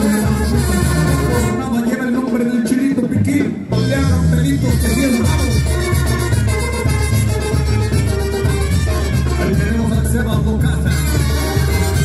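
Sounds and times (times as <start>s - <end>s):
brass band music: 0.0s - 12.0s.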